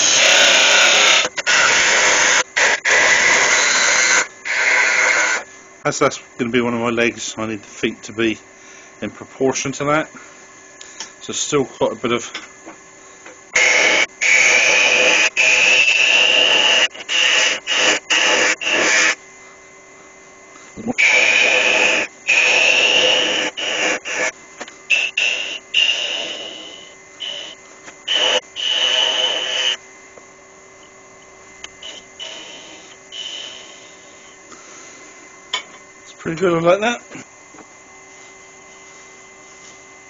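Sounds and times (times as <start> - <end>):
lathe tool scraping wood: 0.0 - 5.5, 13.6 - 19.2, 20.8 - 29.8, 31.7 - 34.3
faint lathe hum: 0.0 - 40.0.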